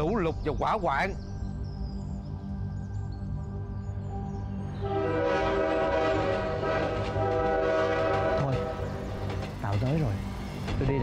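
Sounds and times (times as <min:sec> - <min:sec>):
soft background music: 0:00.0 - 0:11.0
train horn blast: 0:04.8 - 0:09.4.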